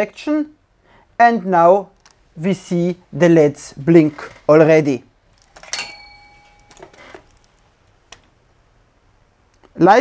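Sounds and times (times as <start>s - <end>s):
click with short clear ringing tone: 5.6s - 7.0s.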